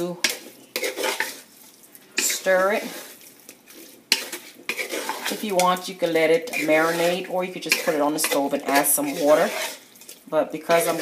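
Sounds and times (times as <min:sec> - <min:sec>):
spoon scraping metal pan: 0:00.0 - 0:01.5, 0:02.2 - 0:11.0.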